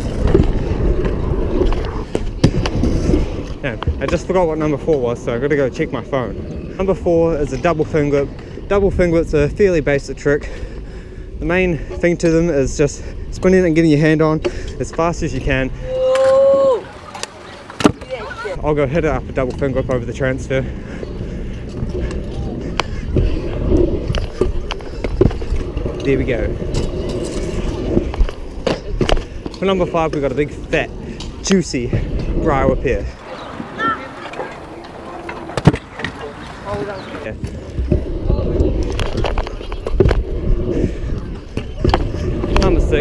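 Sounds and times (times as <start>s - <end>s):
wind on microphone: 0.0s - 5.4s, 30.5s - 43.0s
scooter wheels rolling on concrete: 0.0s - 43.0s.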